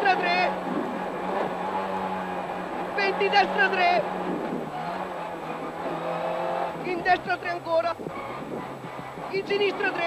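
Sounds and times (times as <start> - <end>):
car engine from inside cabin: 0.0 - 10.0.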